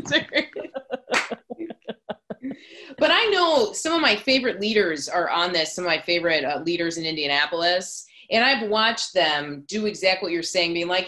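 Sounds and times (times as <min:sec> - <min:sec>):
woman laughing: 0:00.0 - 0:03.2.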